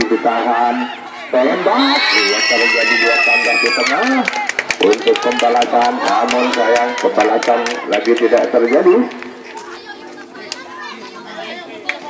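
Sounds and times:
crowd and children chattering: 0.0s - 12.0s.

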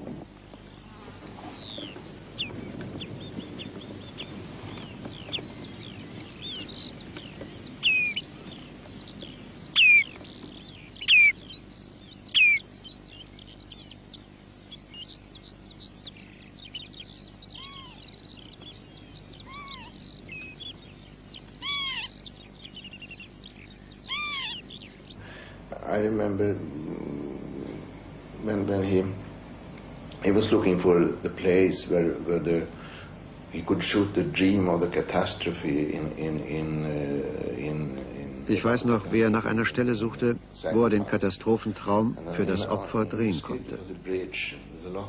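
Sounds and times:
birds chirping: 0.0s - 45.0s
lower arched bird calls: 0.0s - 45.0s
sharply falling bird calls: 17.2s - 22.2s, 23.6s - 25.5s
man's voice: 33.6s - 45.0s.

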